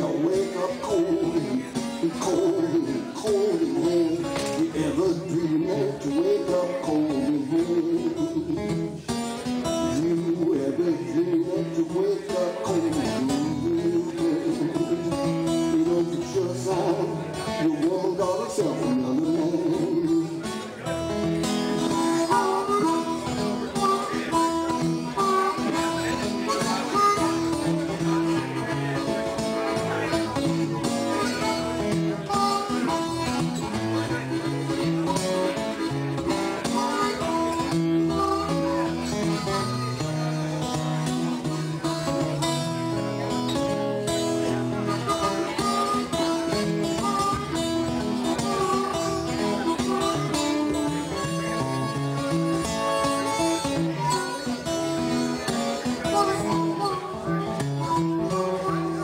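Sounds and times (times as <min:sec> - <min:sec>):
acoustic guitar picking: 0:00.0 - 0:59.0
harmonica solo: 0:19.7 - 0:59.0.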